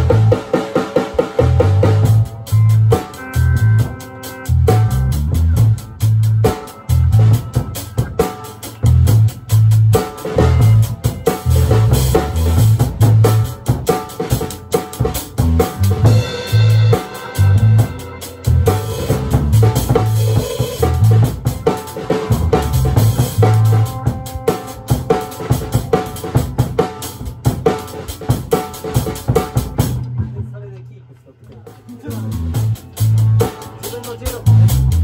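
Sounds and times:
low bass notes: 0:00.0 - 0:00.6, 0:01.2 - 0:14.4, 0:15.0 - 0:28.4, 0:29.0 - 0:35.0
drum kit beat: 0:00.0 - 0:35.0
live band music: 0:00.0 - 0:35.0.

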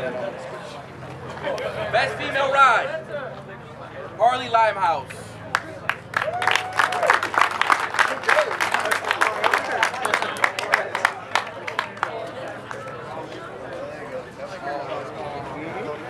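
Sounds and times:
crowd clapping and cheering: 0:05.4 - 0:13.8
person whooping: 0:06.2 - 0:07.2.

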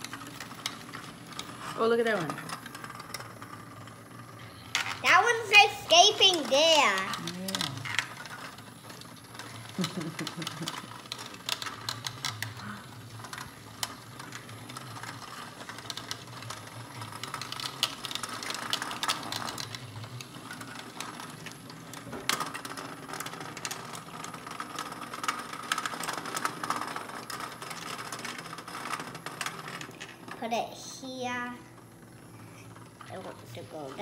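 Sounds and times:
mechanical vibration buzz: 0:00.0 - 0:34.0.

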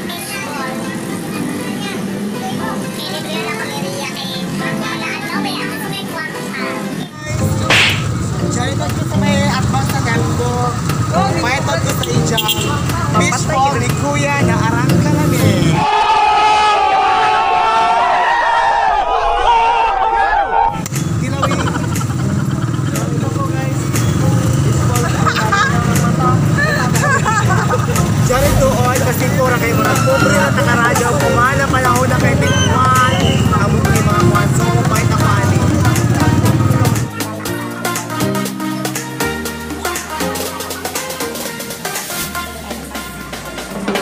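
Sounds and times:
people talking: 0:00.0 - 0:15.8, 0:21.2 - 0:37.6
background music: 0:00.0 - 0:16.0, 0:20.7 - 0:44.0
voices: 0:00.0 - 0:16.0, 0:20.8 - 0:44.0
low street traffic rumble: 0:07.2 - 0:15.8, 0:20.8 - 0:37.1, 0:39.1 - 0:44.0.

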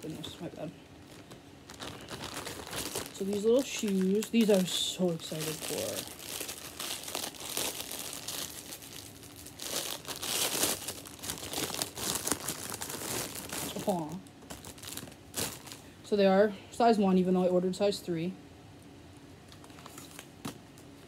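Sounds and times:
plastic packaging crinkling: 0:00.0 - 0:16.0, 0:19.5 - 0:21.0.

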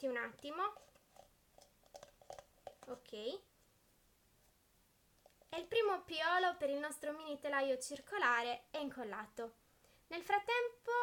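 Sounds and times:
clicks and taps on plastic jar: 0:00.4 - 0:03.1.

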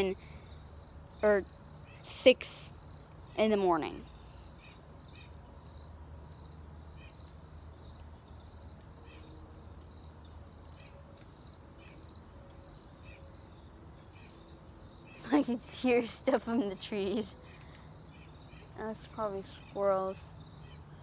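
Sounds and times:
crickets chirping: 0:00.0 - 0:21.0
high insect drone: 0:00.0 - 0:21.0.

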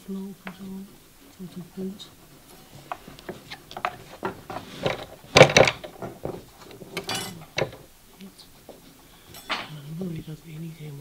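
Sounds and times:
hand tools clicking and scraping: 0:02.2 - 0:07.9, 0:08.6 - 0:09.8.

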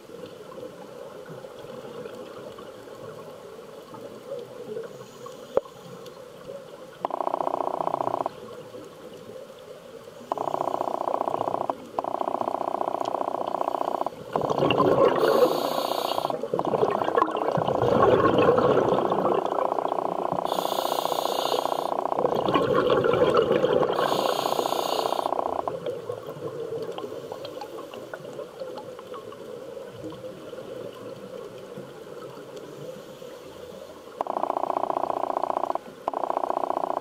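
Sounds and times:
regulator bubbles gurgling: 0:10.3 - 0:32.5
diver breathing: 0:15.2 - 0:16.4, 0:20.4 - 0:22.0, 0:24.0 - 0:25.4
regulator hisses: 0:15.2 - 0:16.4, 0:20.5 - 0:22.0, 0:24.0 - 0:25.4.

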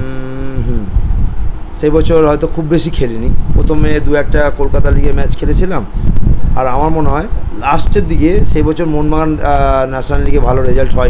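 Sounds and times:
man humming: 0:00.0 - 0:01.2.

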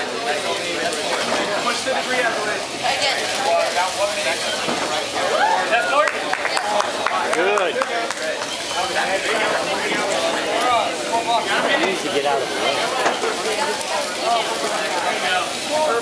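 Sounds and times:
people talking indistinctly: 0:00.0 - 0:16.0.

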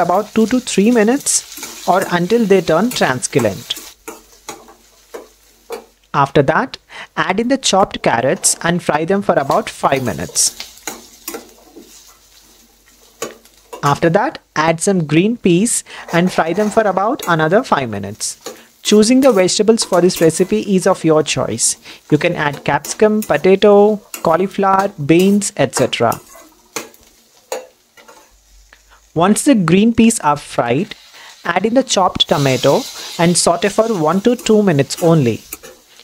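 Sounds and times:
faint cooking hiss: 0:00.0 - 0:36.0
spatula scraping pan: 0:00.2 - 0:05.9, 0:08.0 - 0:13.9, 0:15.6 - 0:28.8, 0:32.1 - 0:36.0
spatula striking pan: 0:03.7 - 0:06.0, 0:10.6 - 0:11.9, 0:24.1 - 0:28.2.

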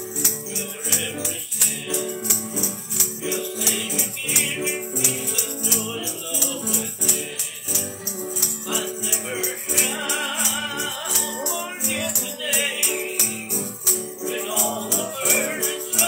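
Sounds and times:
acoustic guitar strumming: 0:00.0 - 0:16.0
bright rattling beat: 0:00.0 - 0:16.0
man singing: 0:00.0 - 0:16.0.

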